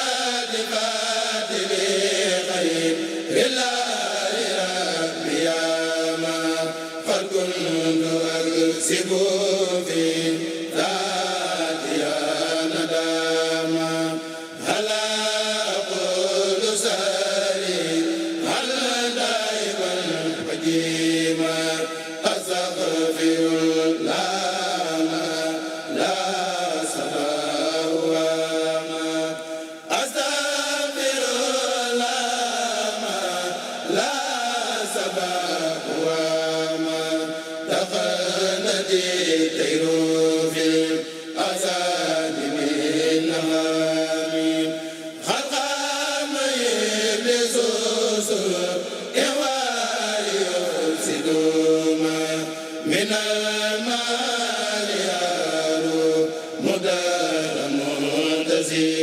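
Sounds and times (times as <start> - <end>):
men chanting through microphones: 0.0 - 59.0.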